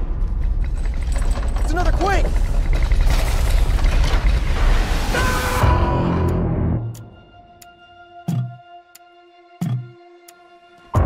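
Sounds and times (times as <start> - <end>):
rattling noise: 0.0 - 5.6.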